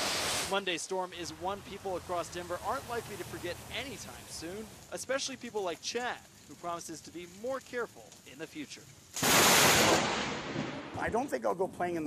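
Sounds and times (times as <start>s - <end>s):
thunderclap: 9.2s - 11.2s.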